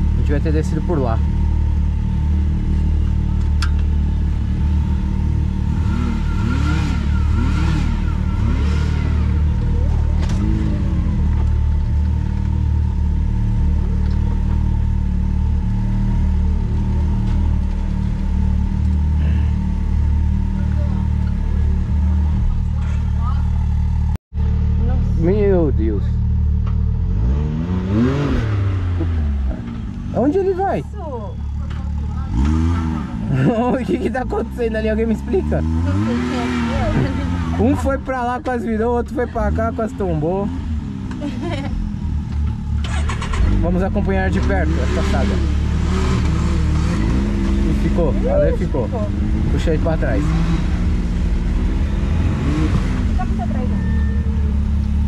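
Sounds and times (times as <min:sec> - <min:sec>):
engine running at low revs: 0:00.0 - 0:55.0.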